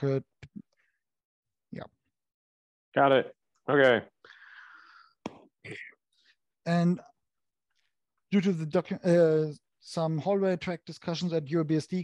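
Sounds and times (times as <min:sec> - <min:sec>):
person breathing audibly: 0:04.2 - 0:06.3.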